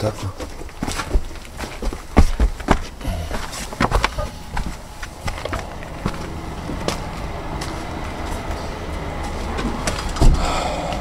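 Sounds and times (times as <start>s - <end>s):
charred wood crunching underfoot: 0.3s - 10.1s
heavy thump: 10.2s - 10.6s.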